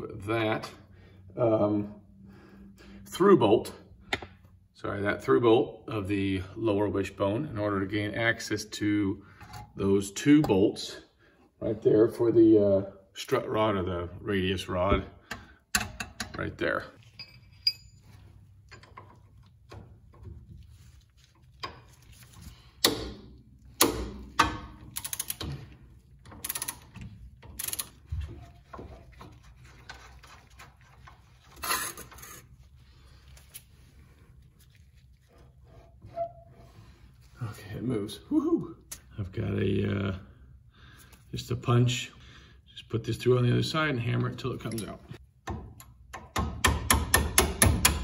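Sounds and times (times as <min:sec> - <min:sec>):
metallic clicks of hand tools: 0:23.8 - 0:25.6.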